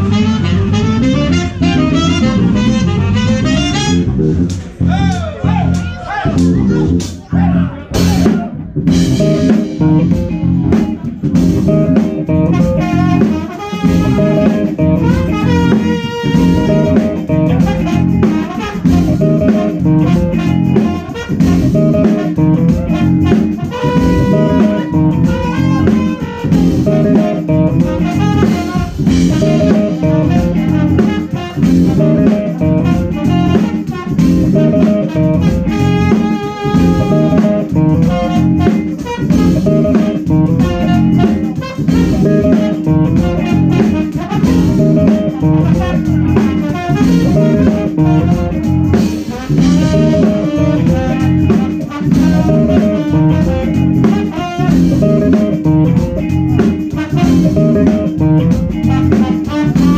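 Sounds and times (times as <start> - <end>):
organ playing: 0.0 - 5.0, 8.9 - 59.9
drum kit beat: 0.0 - 59.9
electric guitar: 0.0 - 59.9.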